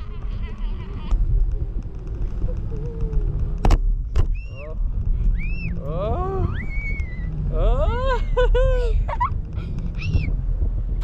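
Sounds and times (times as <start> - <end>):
wind buffeting microphone: 0.0 - 11.0
people whooping: 4.4 - 8.2.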